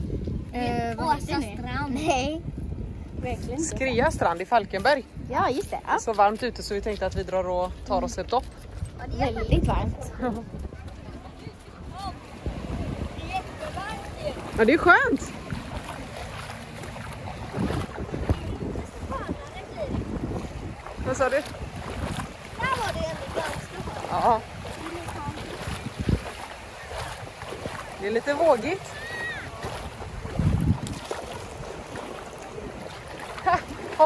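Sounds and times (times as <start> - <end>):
wind buffeting microphone: 0.0 - 34.0
shallow sea water washing: 3.2 - 34.0.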